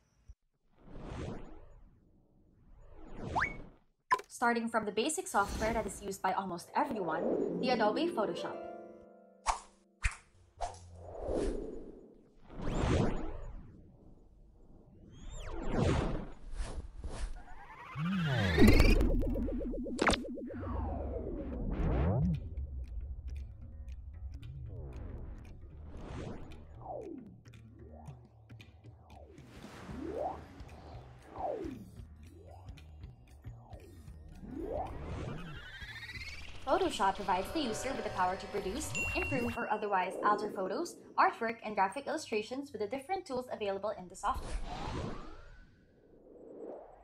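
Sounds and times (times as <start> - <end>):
low steady music: 7.0 - 10.0, 36.4 - 42.2.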